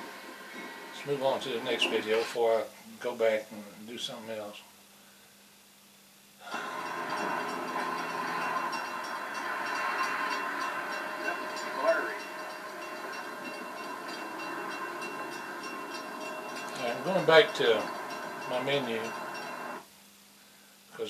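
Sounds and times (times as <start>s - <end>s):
train passing from television speakers: 6.4s - 19.9s.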